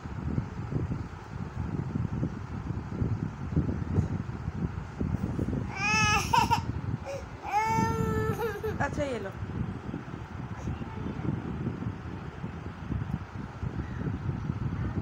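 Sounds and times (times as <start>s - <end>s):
low rumbling background noise: 0.0s - 15.0s
young child crying: 5.7s - 8.9s.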